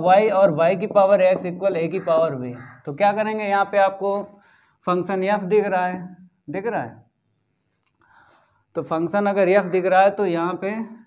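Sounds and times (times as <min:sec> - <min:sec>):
man lecturing: 0:00.0 - 0:07.1, 0:08.8 - 0:11.0.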